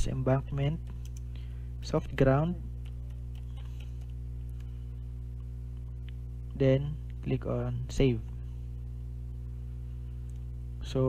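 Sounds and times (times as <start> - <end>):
electrical hum: 0.0 - 11.0
computer keys clicking: 0.8 - 1.3, 2.8 - 4.7.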